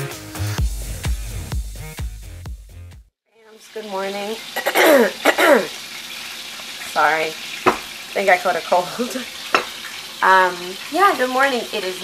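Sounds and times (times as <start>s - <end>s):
food sizzling in a pan: 3.4s - 12.0s
woman humming and clearing throat: 4.6s - 5.7s.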